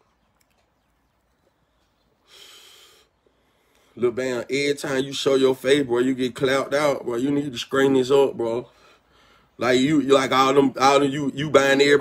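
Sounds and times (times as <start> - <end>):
breathy exhale while smoking: 2.2 - 4.0, 8.7 - 9.5.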